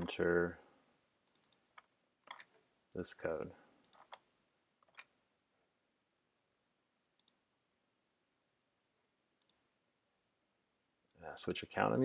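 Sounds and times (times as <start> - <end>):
faint computer mouse clicks: 1.2 - 3.1, 3.8 - 4.2, 7.2 - 7.4, 9.4 - 9.6.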